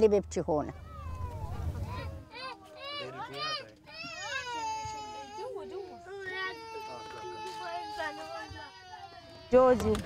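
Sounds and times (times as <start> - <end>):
young child crying: 0.9 - 9.7.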